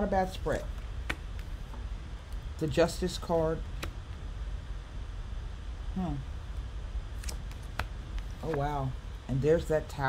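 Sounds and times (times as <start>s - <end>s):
person saying hmm: 5.9s - 6.3s.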